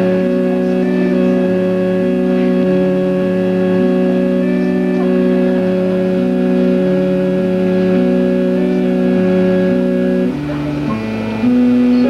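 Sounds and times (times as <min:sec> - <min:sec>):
organ drone chord: 0:00.0 - 0:12.0.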